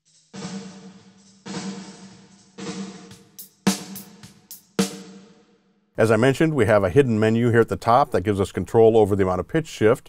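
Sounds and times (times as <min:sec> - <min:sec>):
snare drum hits with reverb: 0:01.5 - 0:05.2.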